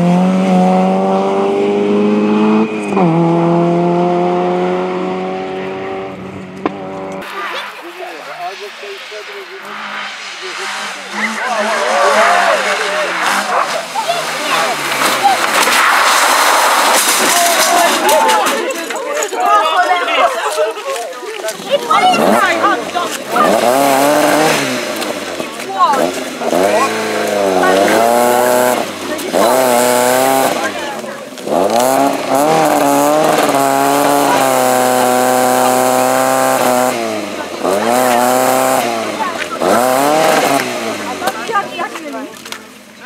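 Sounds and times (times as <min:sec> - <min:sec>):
car engine revving: 0:00.0 - 0:18.5, 0:21.5 - 0:42.5.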